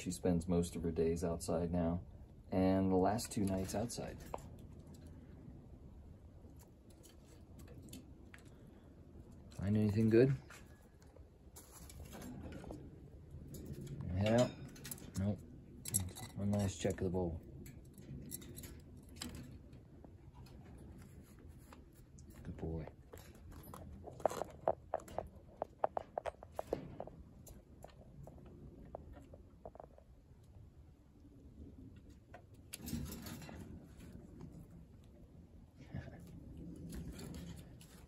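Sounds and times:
sharp clicks and crunches: 3.0s - 5.2s, 17.6s - 30.7s
claws scratching and rustling: 17.5s - 29.4s.

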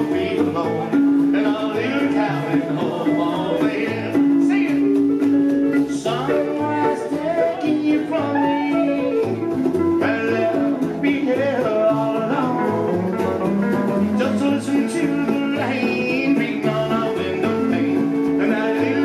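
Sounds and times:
acoustic guitars strummed: 0.0s - 19.0s
bass line: 0.0s - 19.0s
man singing into microphone: 0.0s - 19.0s.

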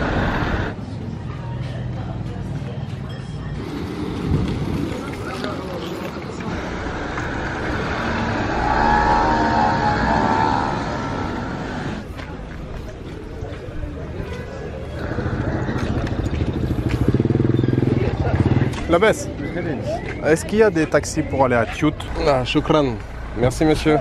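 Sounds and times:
people's voices: 0.0s - 24.0s
street traffic: 0.0s - 24.0s
motor scooter passing: 3.5s - 12.1s, 14.9s - 19.4s.

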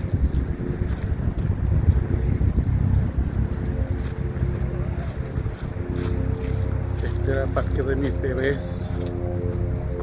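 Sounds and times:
faint music: 0.0s - 10.0s
steady low rumble: 0.0s - 10.0s
wind buffeting microphone: 0.0s - 10.0s.

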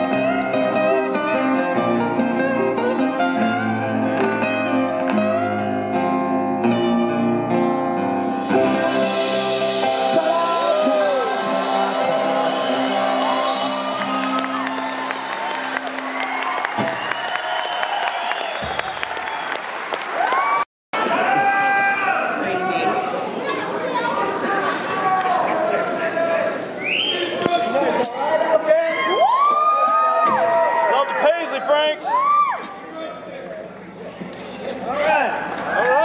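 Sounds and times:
held music chord ringing: 6.7s - 16.1s
audience cheering and whooping: 9.7s - 22.1s, 28.8s - 32.7s, 35.6s - 36.0s
whistles from audience: 16.2s - 19.7s, 26.8s - 27.4s.

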